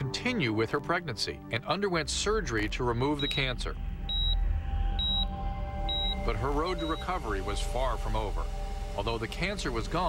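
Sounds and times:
low steady drone: 0:02.8 - 0:10.0
patient monitor beeping: 0:03.2 - 0:07.7.

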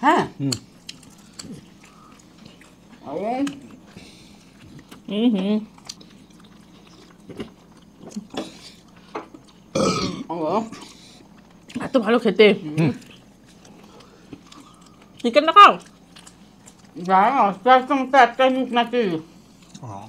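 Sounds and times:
soft chewing and mouth clicks: 0:00.4 - 0:09.7, 0:10.7 - 0:17.2, 0:18.4 - 0:20.0.

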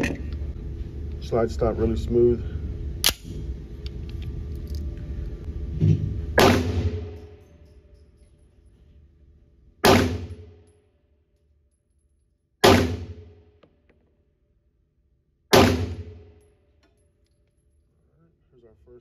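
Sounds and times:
pistol shots echoing: 0:06.4 - 0:07.2, 0:09.8 - 0:10.5, 0:12.6 - 0:13.4, 0:15.5 - 0:16.3.

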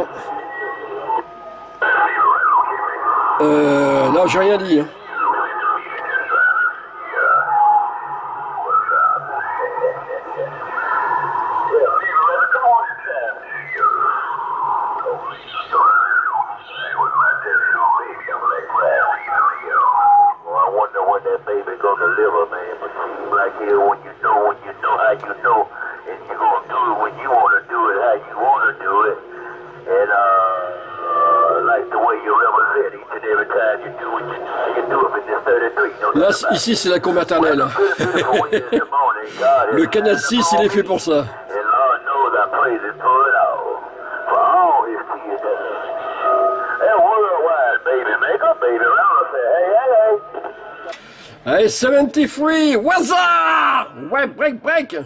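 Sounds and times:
narrow-band radio speech: 0:00.0 - 0:07.7, 0:08.7 - 0:14.2, 0:14.8 - 0:53.2
radio band noise: 0:00.0 - 0:53.2.

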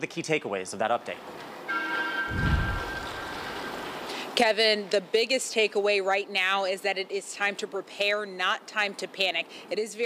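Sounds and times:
low rumble: 0:02.3 - 0:03.4.

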